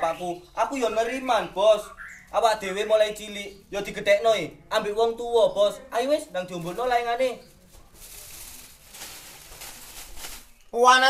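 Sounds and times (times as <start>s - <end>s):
plastic and paper crinkling: 6.6s - 10.8s.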